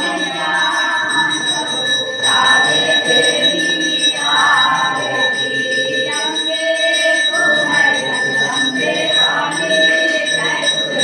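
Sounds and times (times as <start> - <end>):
temple bells ringing: 0.0 - 11.0.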